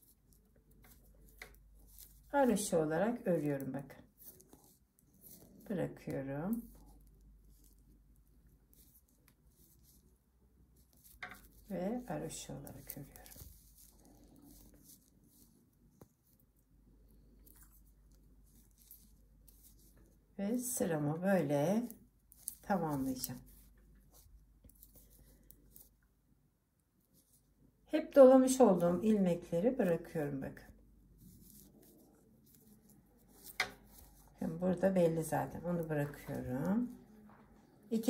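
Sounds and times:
knitting needles and yarn handling: 0:00.0 - 0:38.0
knitting needles clicking: 0:00.2 - 0:02.3.

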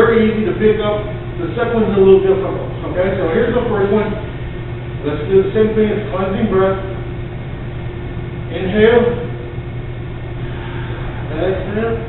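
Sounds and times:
room hum and rumble: 0:00.0 - 0:12.0.

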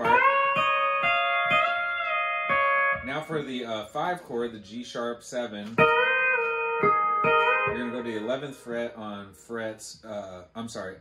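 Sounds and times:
pedal steel guitar chord: 0:00.0 - 0:03.4, 0:05.8 - 0:08.8.

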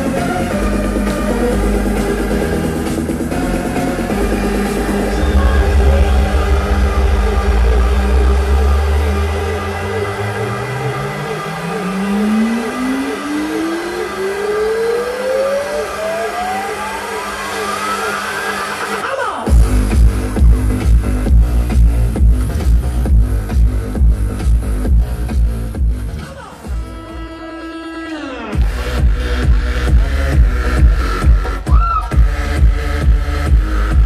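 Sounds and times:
electronic dance music: 0:00.0 - 0:34.0
synth tone sweeping upward: 0:03.8 - 0:19.0.

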